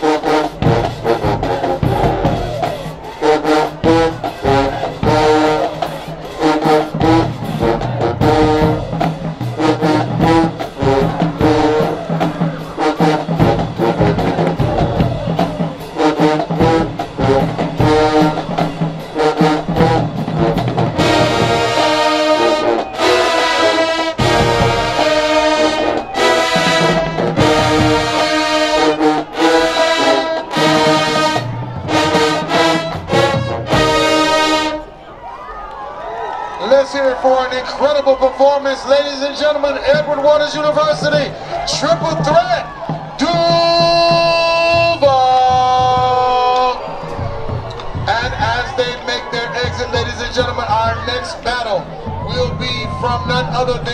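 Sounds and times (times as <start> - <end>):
drumline drum hits: 0.0 - 35.0, 39.5 - 53.9
marching band brass: 0.0 - 53.9.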